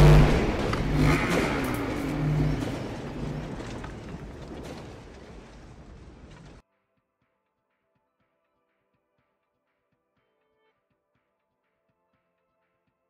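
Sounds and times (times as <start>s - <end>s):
booming hit: 0.0s - 6.6s
rumbling swell with low pulsing tones: 0.0s - 6.6s.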